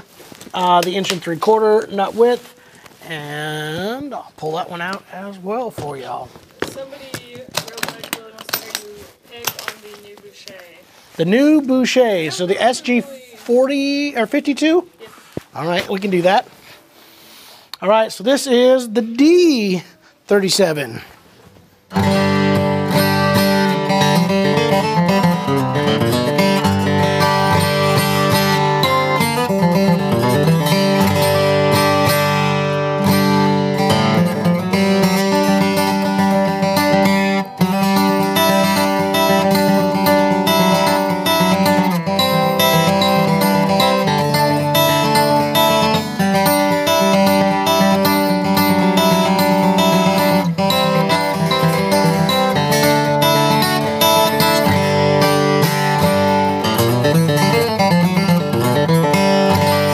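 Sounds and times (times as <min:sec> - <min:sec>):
acoustic guitar chords: 0:21.5 - 0:59.9.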